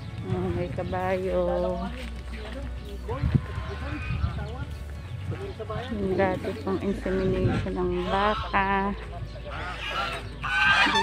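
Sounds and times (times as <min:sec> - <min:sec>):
geese honking: 0:03.1 - 0:04.7, 0:05.3 - 0:11.0.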